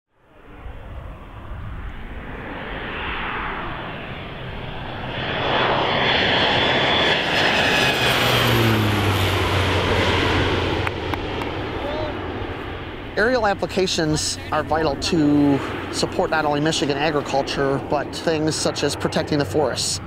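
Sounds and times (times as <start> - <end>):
airplane engine and propeller: 0.2 - 20.0.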